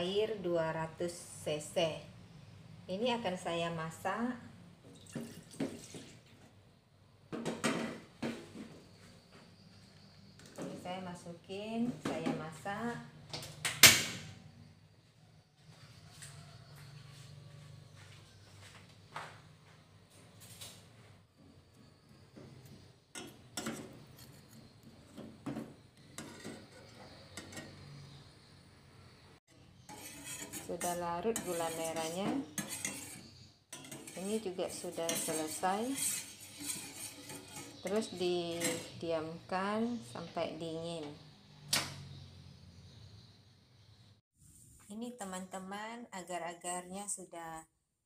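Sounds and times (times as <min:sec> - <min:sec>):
metal ladle scraping saucepan: 0:26.0 - 0:28.1, 0:29.5 - 0:39.3.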